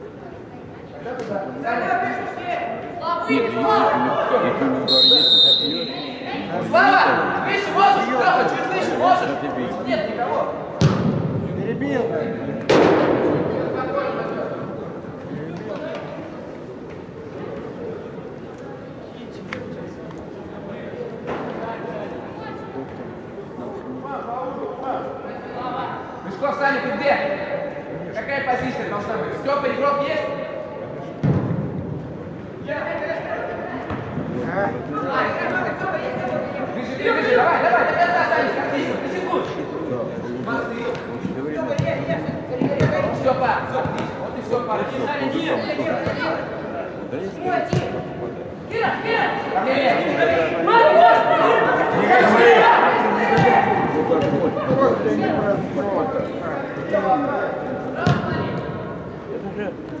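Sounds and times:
players shouting echoing: 47.6 - 55.8.

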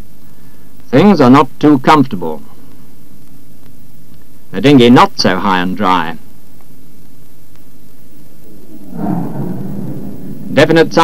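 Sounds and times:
low steady rumbling: 7.7 - 11.0.

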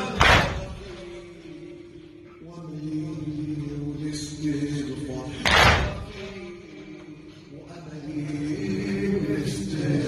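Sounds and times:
crowd slapping chests in unison: 0.0 - 0.9, 5.4 - 6.2
man chanting: 0.0 - 10.0.

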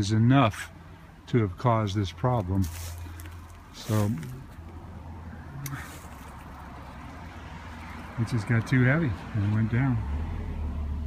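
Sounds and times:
person speaking: 0.0 - 7.2.

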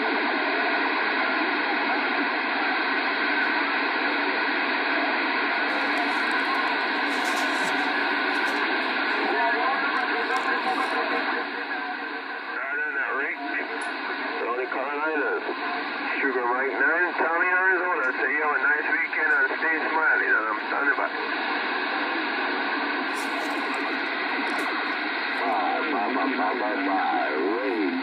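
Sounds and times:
radio static hiss: 0.0 - 28.0
garbled voice over radio: 5.6 - 15.5, 16.1 - 21.2, 23.1 - 28.0.

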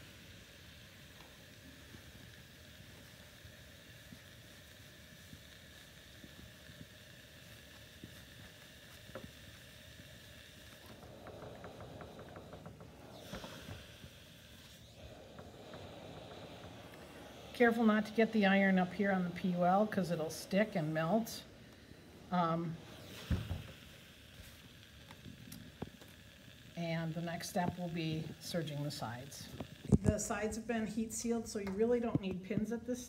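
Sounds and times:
steam iron hiss: 0.0 - 32.3.

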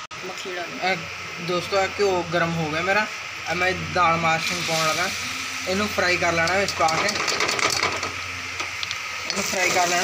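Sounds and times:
lentils sizzling in hot ghee: 0.3 - 10.0.

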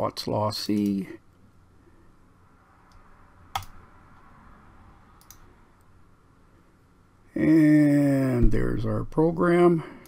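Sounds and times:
faint steady hum: 0.0 - 10.0
computer mouse clicks: 2.8 - 3.8, 5.2 - 5.9.

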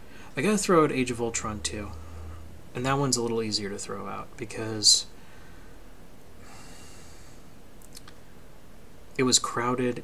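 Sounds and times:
steady low hum: 0.0 - 10.0
man inhaling softly: 5.2 - 7.6.

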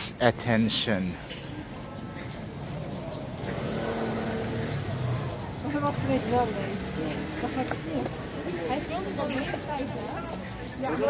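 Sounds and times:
car passing: 2.3 - 10.2.

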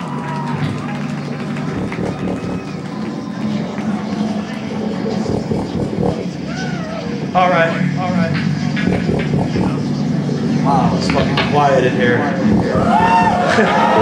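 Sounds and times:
distorted guitar and bass: 0.6 - 14.0
loud shouted voices: 12.3 - 14.0.

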